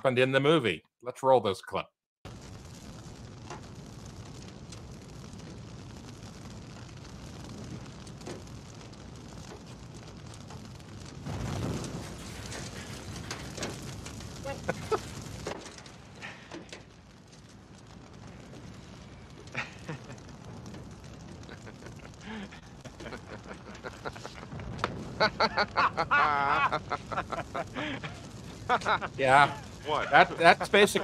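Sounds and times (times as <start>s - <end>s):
car fire crackling: 2.2s - 31.0s
sharp pops: 2.3s - 31.0s.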